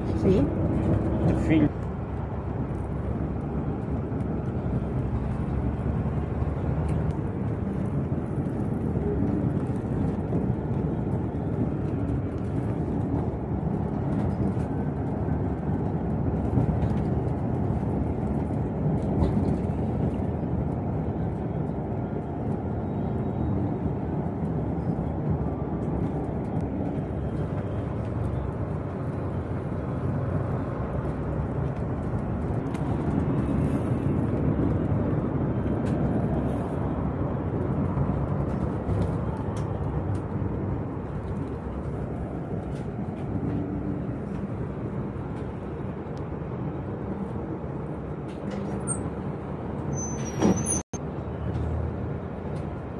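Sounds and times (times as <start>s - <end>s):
tyres on road: 0.0s - 52.9s
vehicle engine rumble: 0.0s - 52.9s.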